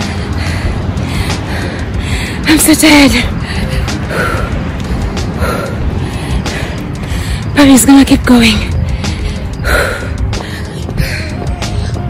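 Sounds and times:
heavy breathing: 0:00.0 - 0:02.4, 0:03.3 - 0:07.6, 0:08.8 - 0:12.0.

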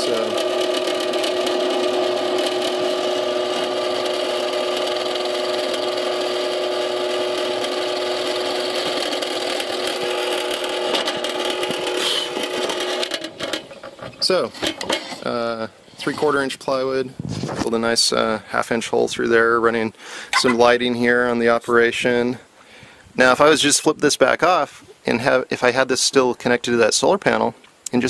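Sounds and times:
drill press motor humming: 0:00.0 - 0:14.1
drill bit boring through plywood: 0:00.0 - 0:14.2.

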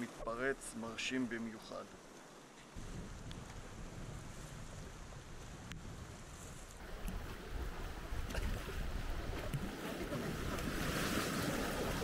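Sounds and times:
wind rumbling on microphone: 0:02.7 - 0:12.0
whitewater rapids rushing: 0:06.8 - 0:12.0.

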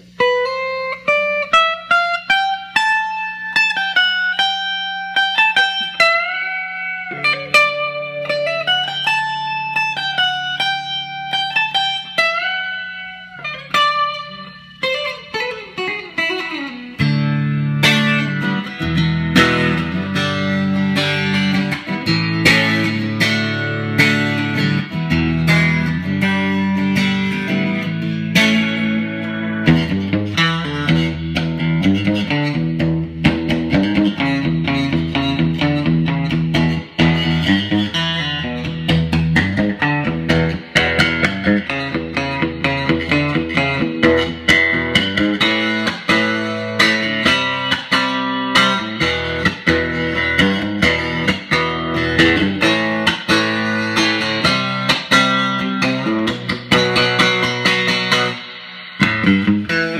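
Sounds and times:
electric guitar playing: 0:00.0 - 0:59.9.

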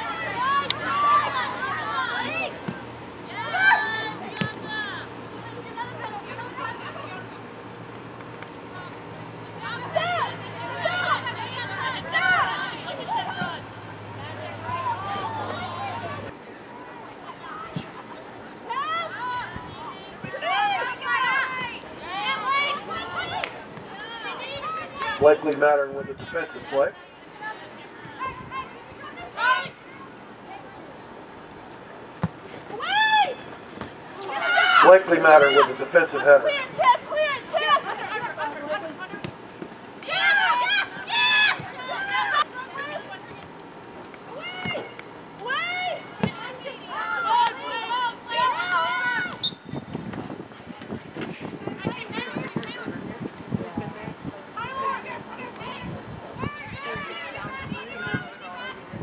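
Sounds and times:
players and spectators shouting: 0:00.0 - 0:07.5, 0:08.7 - 0:30.8, 0:32.7 - 0:43.4, 0:44.3 - 0:49.8, 0:54.5 - 0:59.0
low steady hum: 0:00.0 - 0:59.0.

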